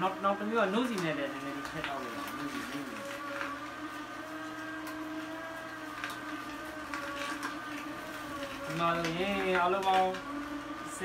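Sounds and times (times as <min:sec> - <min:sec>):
juicer motor humming: 0:00.0 - 0:11.0.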